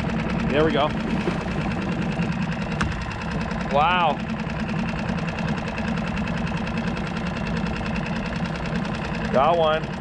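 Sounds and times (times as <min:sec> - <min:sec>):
outboard motor idling: 0:00.0 - 0:10.0.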